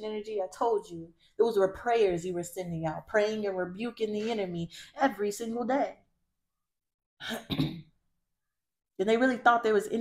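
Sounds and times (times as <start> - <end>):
woman clearing her throat: 7.2 - 7.9.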